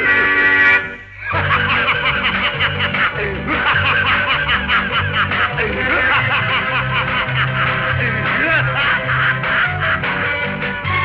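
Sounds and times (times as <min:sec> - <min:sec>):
band bass line: 0:00.0 - 0:11.0
man laughing rhythmically: 0:01.2 - 0:10.2.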